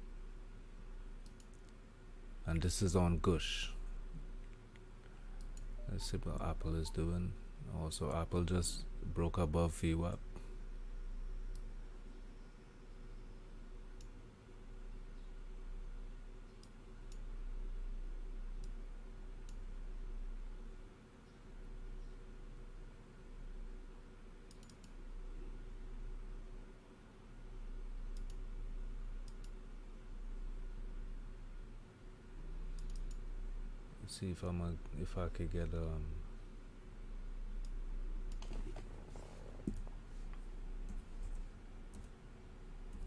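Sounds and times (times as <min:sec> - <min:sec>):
steady low hum: 0:00.0 - 0:43.0
computer mouse clicks: 0:01.2 - 0:01.8, 0:04.4 - 0:05.7, 0:14.0 - 0:14.2, 0:24.5 - 0:25.0, 0:28.1 - 0:28.4, 0:29.2 - 0:29.6, 0:32.7 - 0:33.2, 0:37.6 - 0:39.0.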